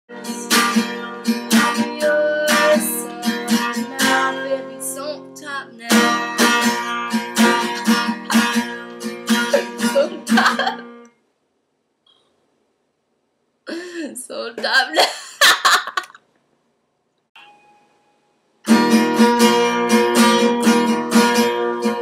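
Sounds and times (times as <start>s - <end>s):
acoustic guitar strumming chords: 0.1s - 11.0s, 18.6s - 22.0s.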